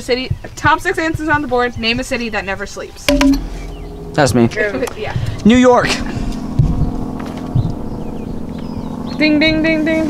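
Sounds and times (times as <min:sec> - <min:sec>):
steady low hum: 0:00.0 - 0:10.0
low rumble: 0:03.1 - 0:08.4.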